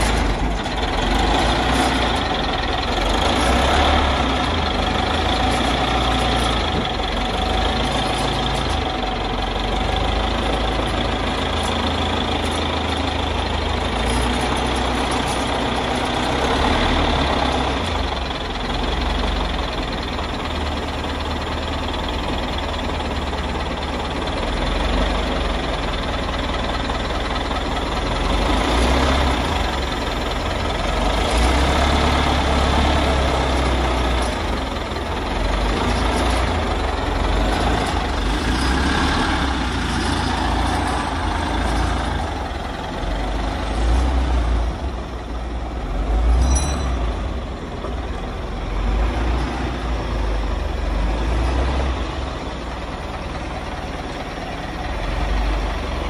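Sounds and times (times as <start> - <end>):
diesel engine rumbling: 0.0 - 56.0.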